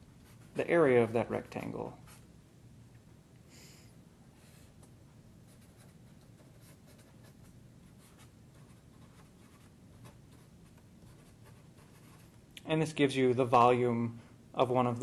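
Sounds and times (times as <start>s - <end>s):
marker scratching on paper: 5.5s - 12.4s.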